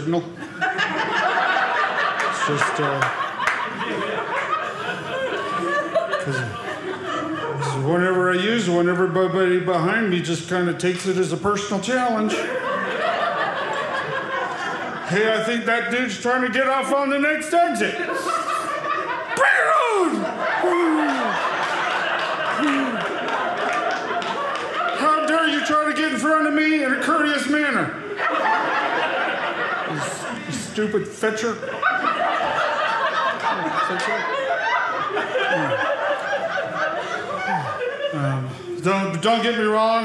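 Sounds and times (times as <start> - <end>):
audience laughter: 0.0 - 8.9, 12.0 - 40.0.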